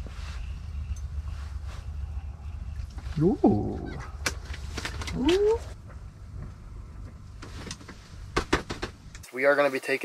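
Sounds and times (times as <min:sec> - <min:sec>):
steady low rumble: 0:00.0 - 0:09.2.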